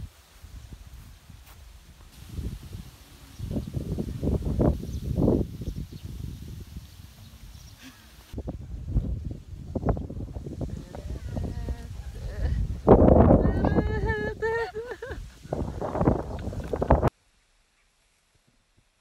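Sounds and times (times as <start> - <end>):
wind buffeting microphone: 0.0 - 17.1.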